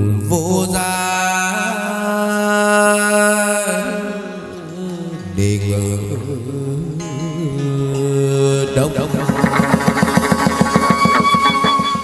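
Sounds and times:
ritual ensemble music: 0:08.8 - 0:12.0
fast even drum beat: 0:08.9 - 0:12.0.

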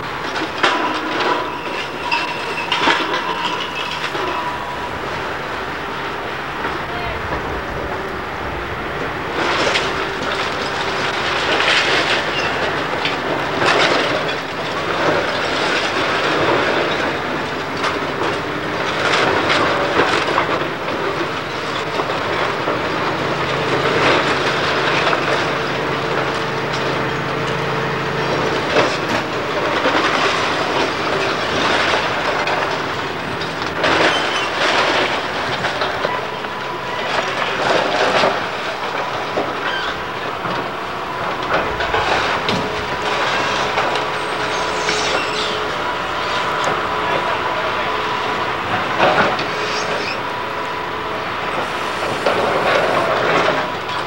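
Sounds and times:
falling masonry crashing: 0:00.0 - 0:45.6, 0:51.3 - 0:54.0
excavator engine under load: 0:00.0 - 0:54.0
thin whine: 0:49.7 - 0:54.0
wood splintering: 0:51.3 - 0:54.0.

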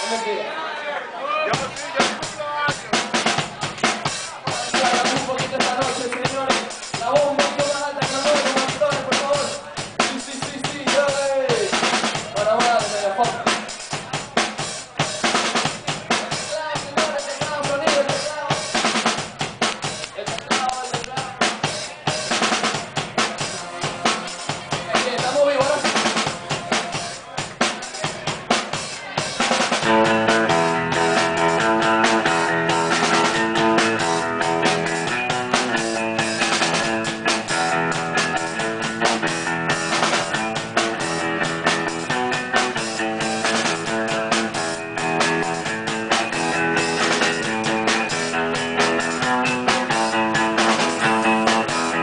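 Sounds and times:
drum kit beat: 0:01.5 - 0:52.0
ringing guitar chords: 0:29.8 - 0:52.0.

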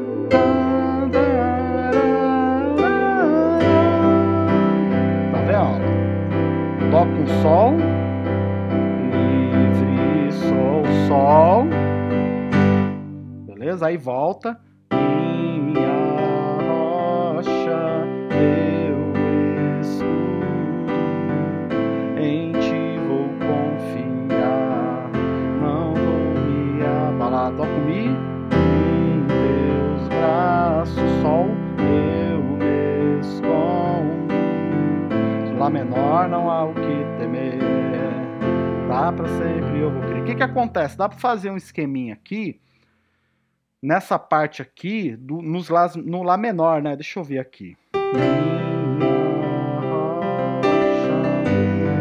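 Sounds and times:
man singing a held note: 0:00.0 - 0:05.9, 0:09.0 - 0:11.8, 0:13.0 - 0:42.5, 0:48.2 - 0:52.0
piano chords on keyboard: 0:00.0 - 0:42.3, 0:47.9 - 0:52.0.

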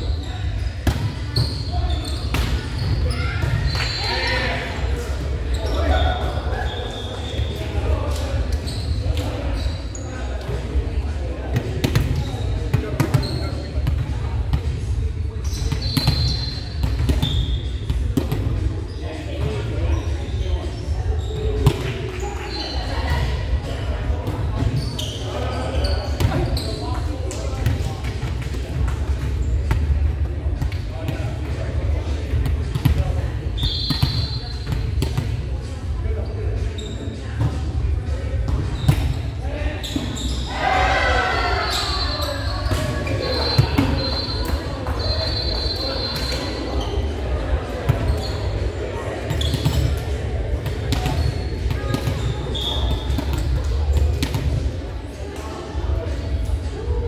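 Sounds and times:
players calling out: 0:40.2 - 0:47.2
volleyballs smacking and bouncing: 0:49.2 - 0:54.9.

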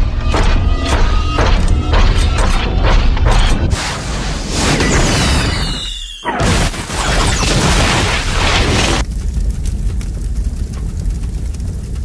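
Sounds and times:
burst of noise: 0:03.8 - 0:09.1
deep rumble: 0:08.6 - 0:12.0.

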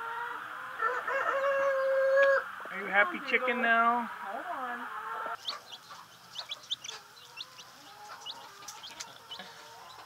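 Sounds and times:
chicks peeping: 0:00.0 - 0:10.0
hen calling: 0:03.1 - 0:10.0.

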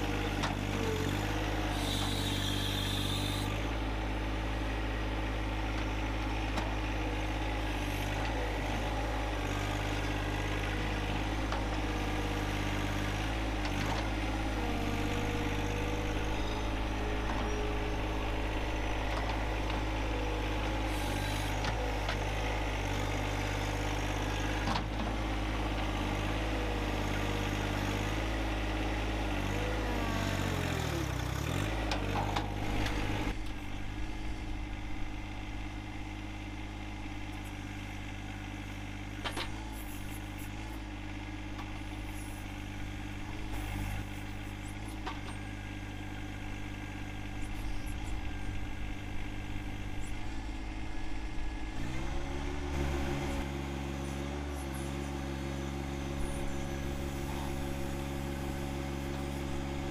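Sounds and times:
diesel tractor engine running: 0:00.0 - 0:59.9.

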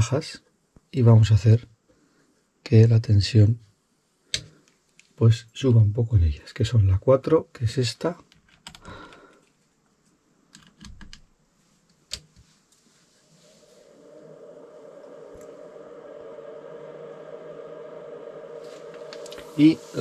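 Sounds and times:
steady hum: 0:11.5 - 0:20.0.

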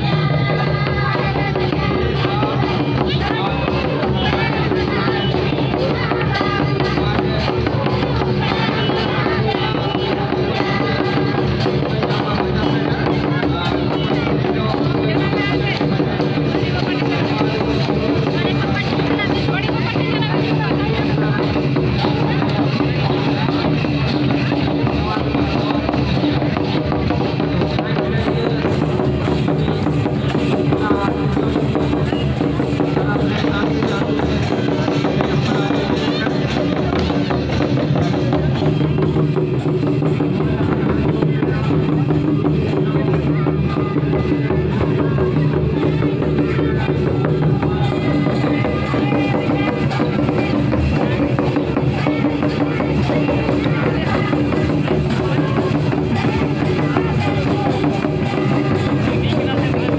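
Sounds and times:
hand drums beating: 0:00.0 - 0:59.9
voices: 0:00.0 - 0:59.9.

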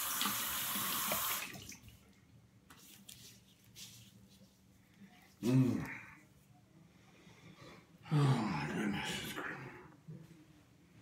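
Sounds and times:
faucet running: 0:00.0 - 0:01.8.

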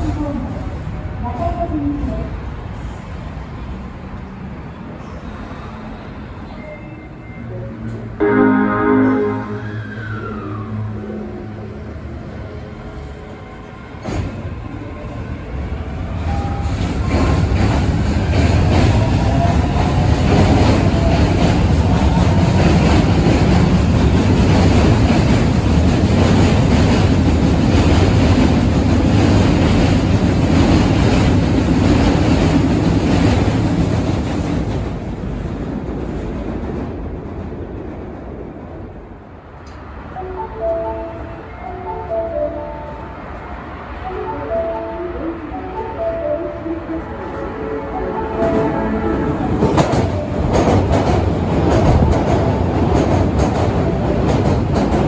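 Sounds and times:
train cars rumbling past: 0:00.0 - 0:55.0
wheels clattering on rails: 0:16.2 - 0:38.6, 0:49.5 - 0:55.0.

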